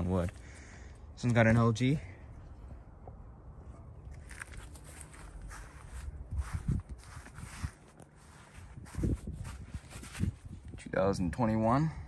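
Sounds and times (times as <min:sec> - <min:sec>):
footsteps on the ground: 0:04.0 - 0:10.6
shoes scuffing: 0:04.2 - 0:10.5.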